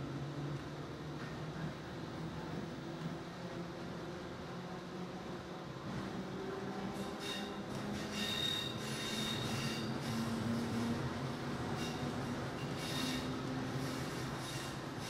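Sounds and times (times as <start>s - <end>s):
train wheels rumbling on track: 0.0s - 15.0s
high-pitched wheel squeal: 7.1s - 10.3s, 11.7s - 13.4s.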